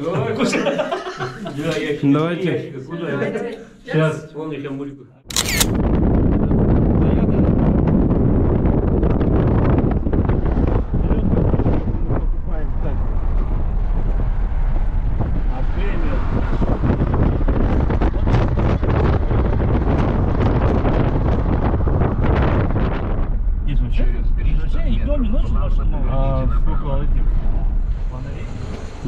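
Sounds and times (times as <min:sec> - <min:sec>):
road and engine noise: 0:05.3 - 0:29.0
wind buffeting microphone: 0:05.3 - 0:29.0.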